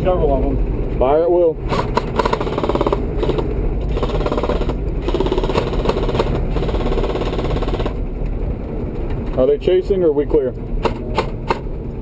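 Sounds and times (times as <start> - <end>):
diesel engine rumble: 0.0 - 12.0
airsoft gun firing full auto: 1.7 - 8.0.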